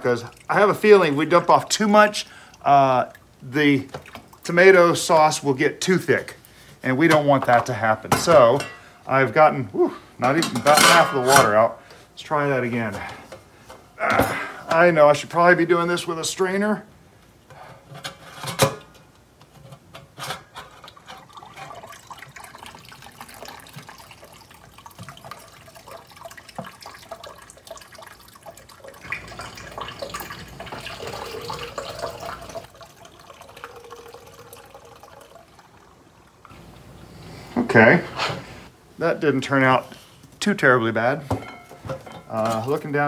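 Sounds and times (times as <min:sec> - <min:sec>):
water pouring into pitcher: 0:00.0 - 0:05.4, 0:20.8 - 0:36.5.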